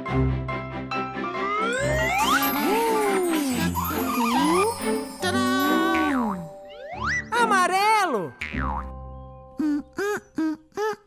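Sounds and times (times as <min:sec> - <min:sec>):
light cartoon music: 0:00.0 - 0:11.0
swooping pitch glides: 0:01.4 - 0:07.3
springy boing effects: 0:08.4 - 0:09.0.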